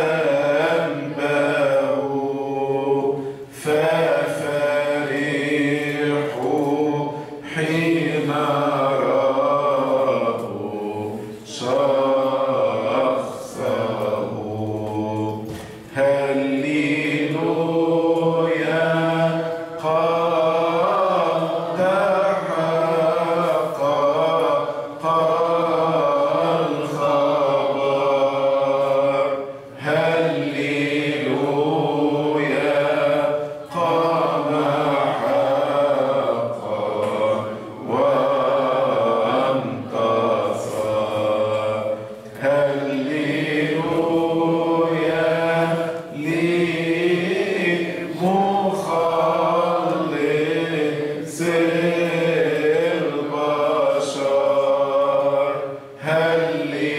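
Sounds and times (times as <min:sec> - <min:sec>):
man chanting a hymn: 0:00.0 - 0:56.9.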